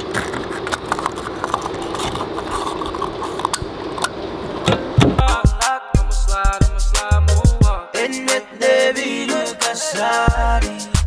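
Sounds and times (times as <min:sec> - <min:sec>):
hip hop music with heavy bass: 0:05.1 - 0:11.0.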